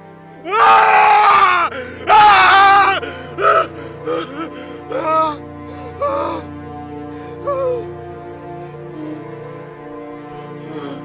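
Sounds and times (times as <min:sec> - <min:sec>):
man screaming in anguish: 0:00.5 - 0:05.4.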